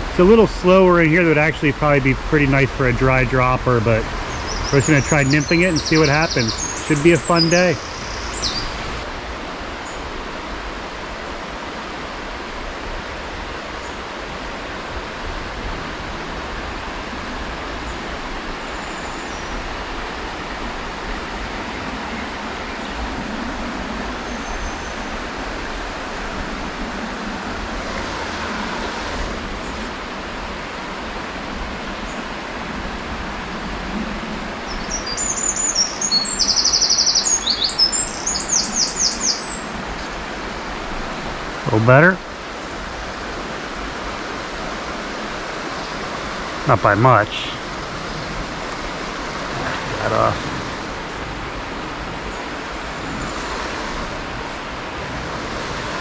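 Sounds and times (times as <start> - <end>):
flowing river water: 0.0 - 56.0
songbird trilling: 3.4 - 9.0, 34.7 - 39.7.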